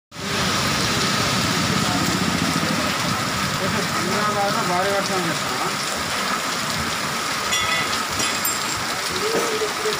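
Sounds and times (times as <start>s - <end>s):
rain falling on road: 0.2s - 9.9s.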